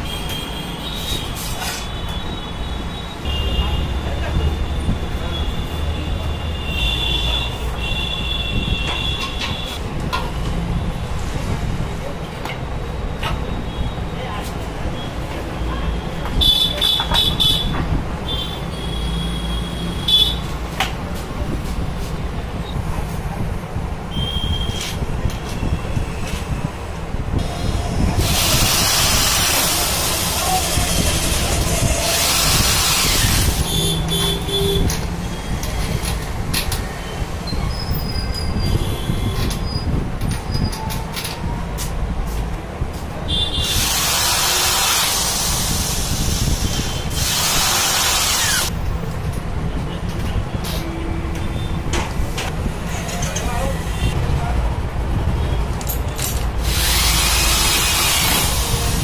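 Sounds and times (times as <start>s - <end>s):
electric drill running: 27.4s - 33.6s, 47.2s - 48.7s, 56.6s - 58.9s
metal parts clicking and knocking: 55.7s - 58.5s.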